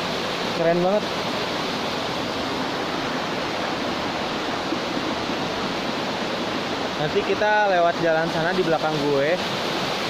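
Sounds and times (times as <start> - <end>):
stream rushing over boulders: 0.0 - 10.0.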